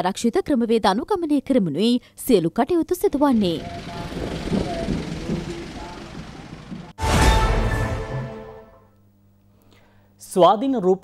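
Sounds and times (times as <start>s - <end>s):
vehicles passing in convoy: 3.3s - 7.0s.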